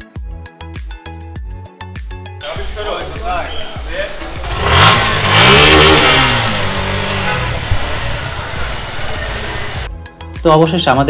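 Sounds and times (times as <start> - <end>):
vehicle engine revving: 2.4 - 9.9.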